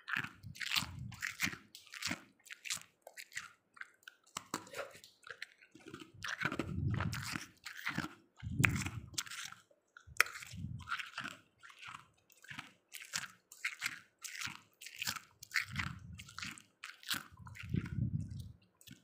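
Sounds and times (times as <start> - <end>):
person crunching frost: 0.0 - 3.6, 4.3 - 19.0.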